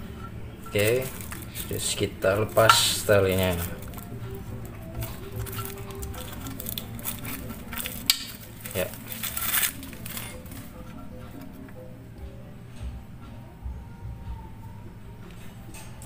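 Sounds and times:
faint background music: 0.0 - 16.0.

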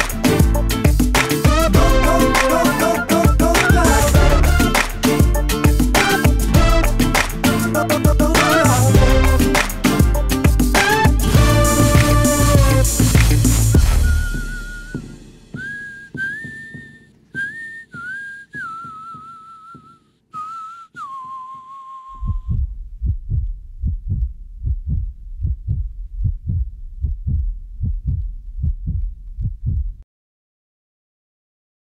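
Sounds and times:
whistled melody: 1.2 - 4.8, 10.9 - 22.4
low heartbeat-like thumps: 10.1 - 16.9, 22.1 - 30.0.

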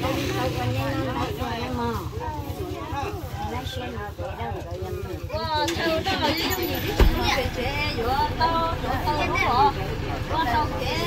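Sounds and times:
people talking: 0.0 - 11.0
truck engine idling: 0.0 - 11.0.

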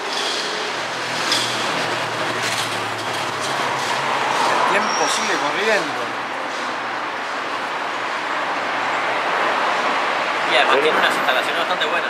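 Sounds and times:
passing vehicle engine rumble: 0.0 - 12.0.

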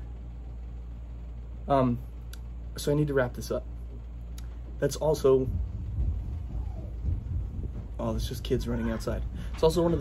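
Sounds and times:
muffled footsteps rumble: 3.9 - 10.0.

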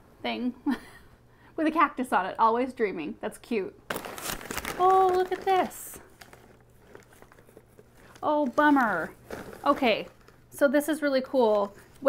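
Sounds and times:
crumpled newspaper rustling: 3.9 - 10.6.

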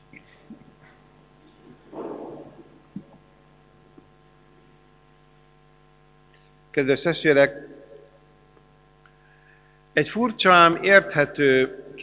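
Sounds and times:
electrical mains hum: 0.0 - 12.0
reverberant spoken words: 1.9 - 3.1, 6.8 - 8.2, 10.0 - 12.0.

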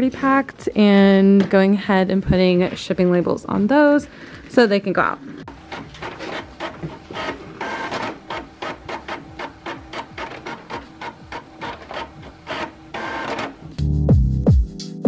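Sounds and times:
inkjet printer printing: 5.5 - 13.8.

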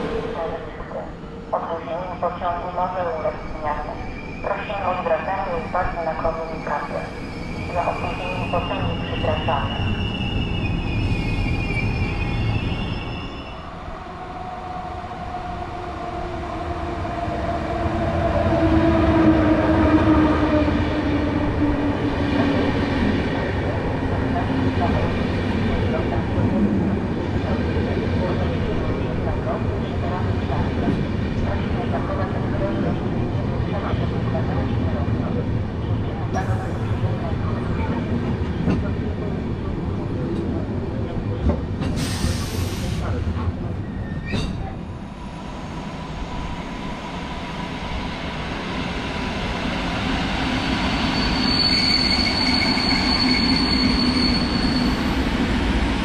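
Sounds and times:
high squeal: 8.3 - 13.6, 51.1 - 55.2
train wheels rumbling on rail: 16.2 - 56.0.

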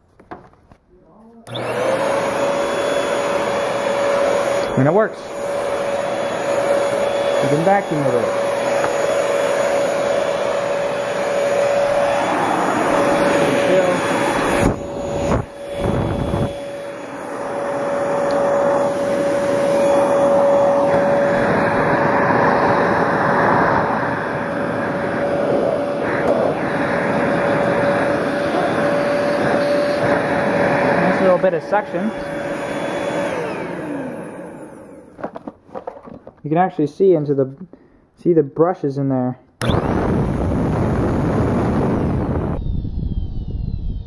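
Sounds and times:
vacuum cleaner running on carpet: 1.5 - 35.8, 39.6 - 42.6.

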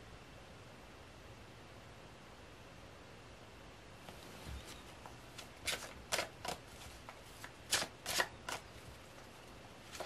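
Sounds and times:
cards swishing and tapping: 4.1 - 10.0.

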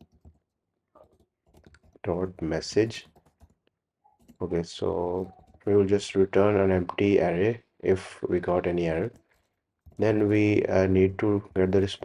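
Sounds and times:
faint keyboard typing: 0.0 - 7.2, 8.4 - 12.0.

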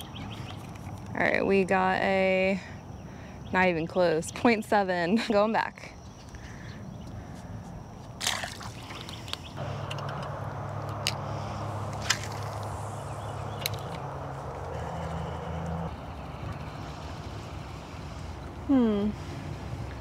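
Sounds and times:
trolling motor humming: 6.4 - 20.0.

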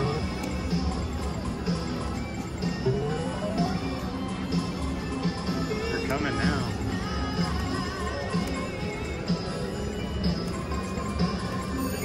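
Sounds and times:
background music with steady beat: 0.0 - 12.0
slot machine chimes and tunes: 0.0 - 12.0.

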